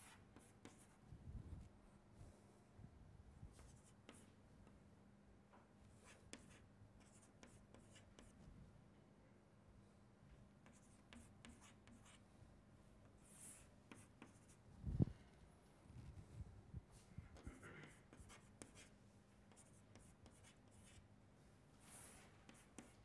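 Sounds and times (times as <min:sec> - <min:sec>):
chalk tapping and scratching: 0:00.0 - 0:01.0, 0:06.0 - 0:08.4, 0:10.6 - 0:12.2, 0:13.2 - 0:14.6, 0:17.4 - 0:18.9, 0:19.5 - 0:21.0, 0:21.8 - 0:23.0
faint steady hum: 0:00.0 - 0:23.0.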